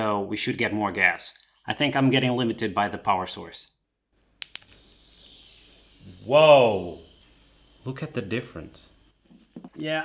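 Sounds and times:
sharp clicks: 4.4 - 5.8.

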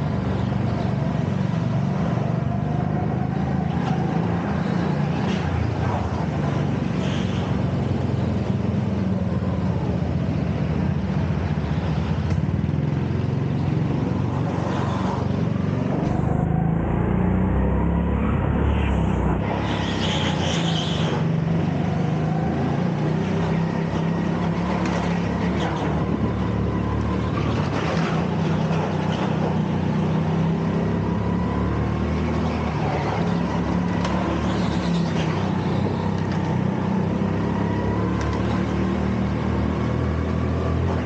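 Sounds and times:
go-kart engine running: 0.0 - 41.0.

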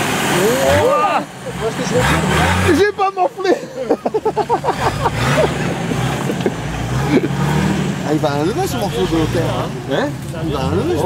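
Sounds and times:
off-road vehicle engine under load: 0.0 - 11.0.

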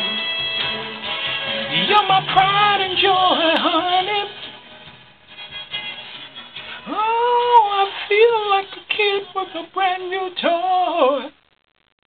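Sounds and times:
high singing voice: 0.0 - 4.5, 6.8 - 11.4
light backing track: 0.0 - 10.4.

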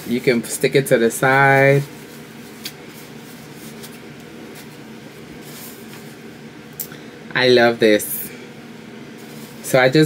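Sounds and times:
room tone hiss: 0.0 - 10.0
fabric shower cap rustling: 1.4 - 6.3, 9.1 - 9.8.

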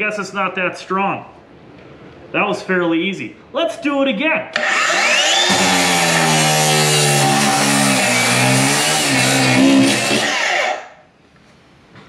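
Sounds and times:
cut-off saw grinding through metal: 4.6 - 10.9.

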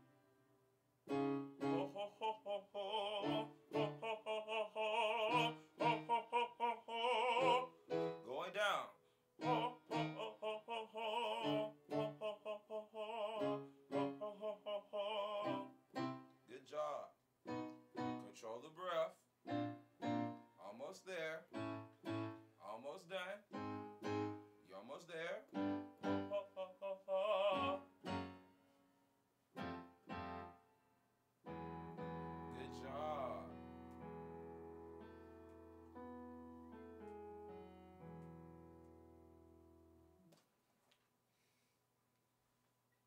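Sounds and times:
keyboard playing piano chords: 0.0 - 0.4, 1.1 - 2.3, 2.9 - 4.2, 4.8 - 8.6, 9.4 - 10.6, 11.2 - 12.3, 13.4 - 16.4, 17.5 - 18.5, 19.4 - 20.7, 21.5 - 22.6, 23.5 - 24.7, 25.5 - 26.6, 27.2 - 28.8, 29.6 - 30.8, 31.4 - 40.2
person singing vowels with vibrato: 1.6 - 8.6, 9.4 - 15.8, 26.0 - 28.0.

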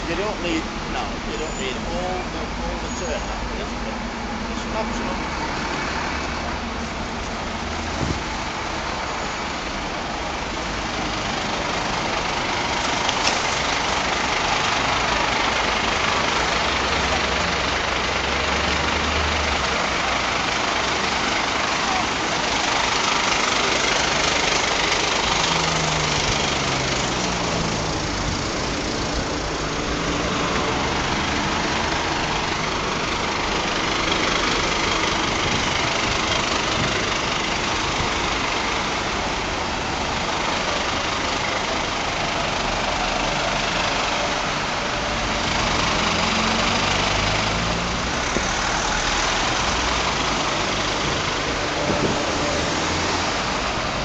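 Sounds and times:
fire engines idling: 0.0 - 54.0
vehicles passing: 0.0 - 54.0.

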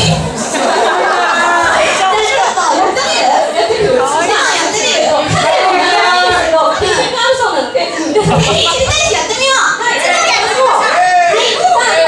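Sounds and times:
women talking into microphones: 1.8 - 12.0.

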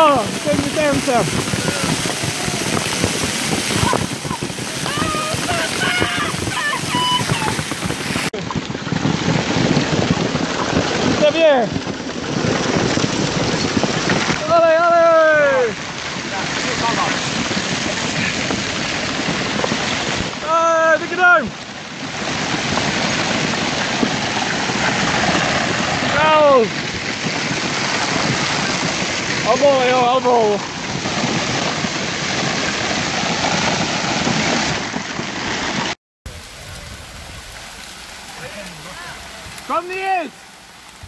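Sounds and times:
hailstones pelting: 0.0 - 41.0.

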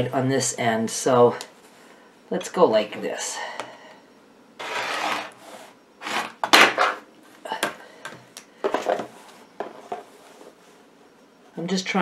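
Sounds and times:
rotary cutter slicing fabric: 4.6 - 5.4.

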